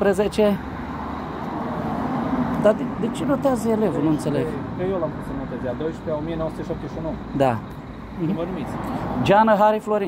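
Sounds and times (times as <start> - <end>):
motor vehicle passing: 0.0 - 9.6.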